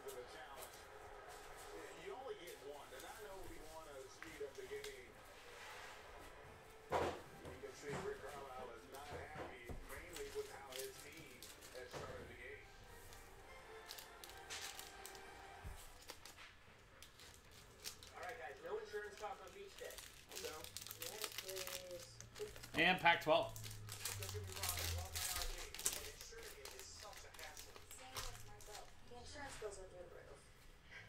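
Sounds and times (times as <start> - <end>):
cards clicking and rustling: 8.0 - 22.8, 23.5 - 28.9.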